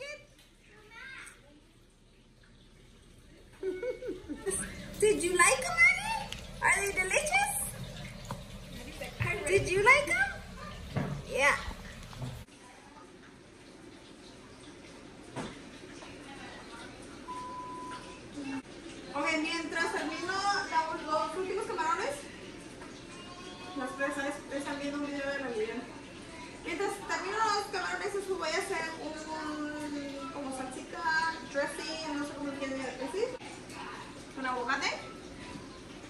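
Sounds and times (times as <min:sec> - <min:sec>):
young child's voice: 0:00.7 - 0:01.6
faint indistinct voices: 0:22.1 - 0:36.0.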